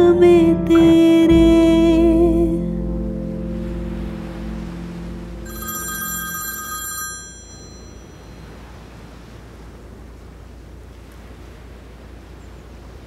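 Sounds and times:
sustained song chord: 0.0 - 6.2
phone ringing: 5.4 - 8.4.

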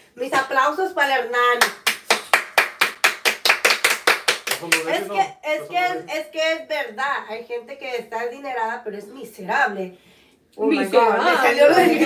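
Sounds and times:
hand clapping: 1.6 - 5.1.

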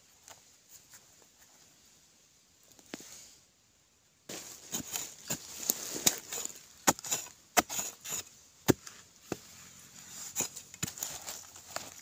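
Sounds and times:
digging tool chopping dry soil: 4.3 - 9.5, 10.2 - 12.0.

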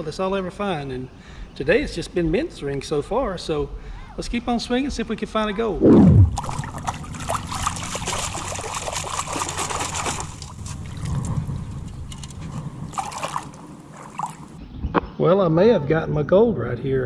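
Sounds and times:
loud falling whoosh: 5.7 - 6.8
water sloshing from metal scoop: 6.3 - 14.6
sand and gravel rattling: 6.4 - 14.6.

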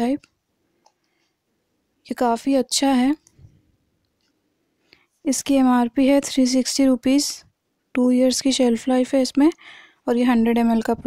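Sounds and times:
woman speaking: 0.0 - 0.2, 2.1 - 3.3, 5.2 - 11.0.

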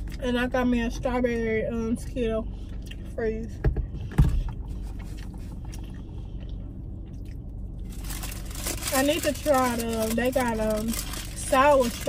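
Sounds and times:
low hum inside a car: 0.0 - 12.0
paper food wrapper rustling: 7.8 - 12.0.

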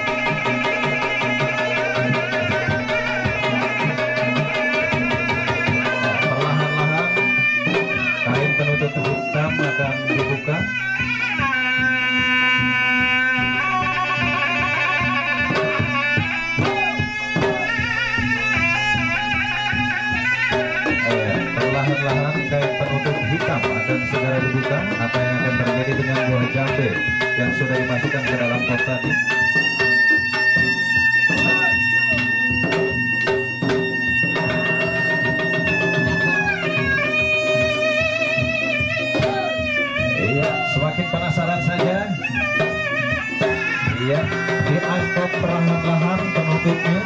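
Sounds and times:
hand drums: 0.0 - 47.0
reedy wind instrument melody: 0.0 - 47.0.

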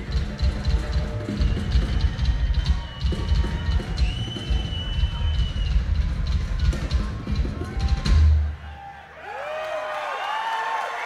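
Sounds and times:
fast drum-kit playing: 0.0 - 8.6
hard rock concert: 0.0 - 9.0.

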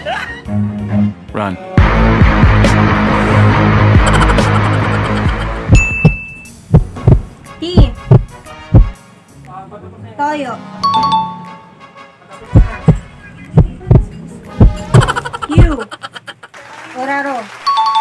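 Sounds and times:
suspense music with heartbeat thumps: 1.8 - 9.0, 12.6 - 15.8.

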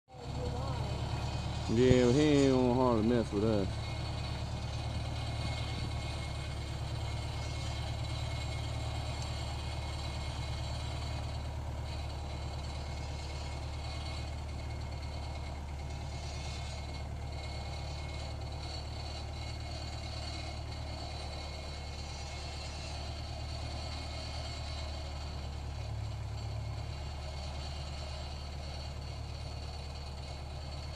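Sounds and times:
tractor diesel engine running: 0.1 - 30.9.

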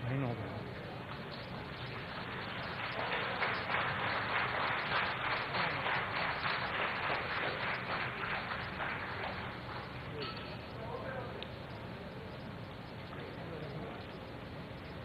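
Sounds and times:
audience applauding: 1.7 - 10.2.

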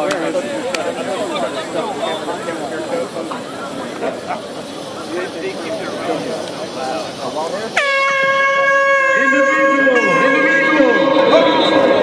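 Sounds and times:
voices calling: 0.0 - 12.0
air horn steady note: 7.8 - 12.0.

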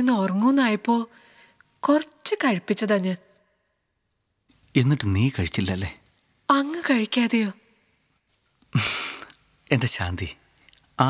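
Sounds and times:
woman speaking: 0.0 - 1.1, 1.8 - 3.4, 6.5 - 7.6
crickets chirping: 0.0 - 11.0
man speaking: 4.8 - 6.0, 9.7 - 10.4.

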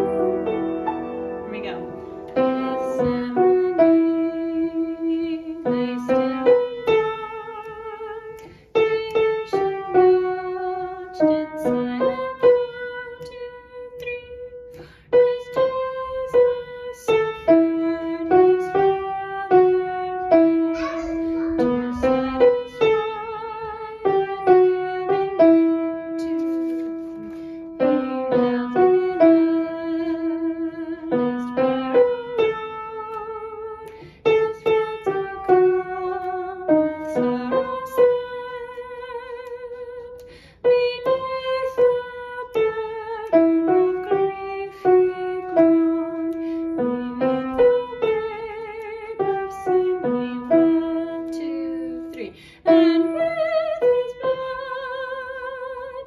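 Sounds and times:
slow piano melody: 0.0 - 56.0.

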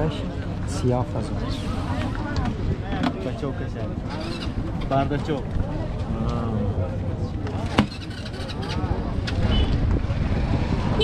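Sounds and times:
market hubbub rumble: 0.0 - 11.0.

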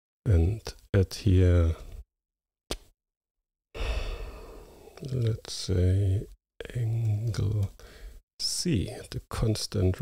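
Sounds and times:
man sighing breath: 3.8 - 5.0, 7.8 - 8.2.

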